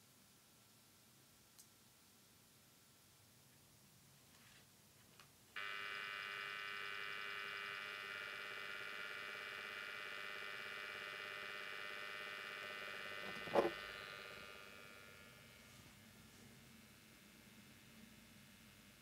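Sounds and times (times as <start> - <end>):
star projector buzzing whine: 5.6 - 19.0.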